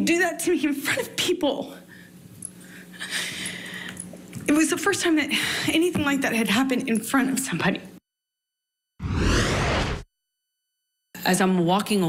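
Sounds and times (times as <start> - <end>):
transition whoosh: 9.0 - 10.1.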